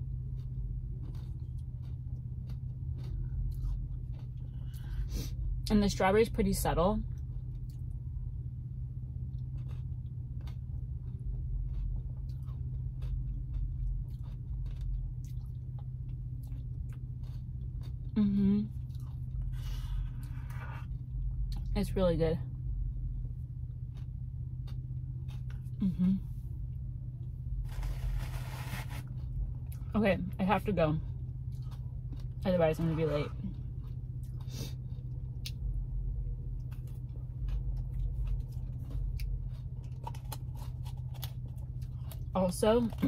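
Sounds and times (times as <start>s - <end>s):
chewing and mouth clicks: 0.2s - 5.0s, 7.1s - 8.0s, 9.3s - 21.7s, 23.7s - 25.9s, 31.4s - 32.4s, 36.6s - 43.0s
scraping rustle: 27.7s - 29.1s.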